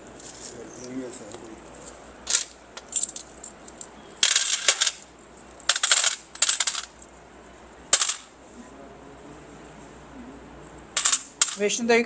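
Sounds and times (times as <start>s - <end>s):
coins clinking in hands: 1.6s - 8.3s, 10.6s - 11.8s.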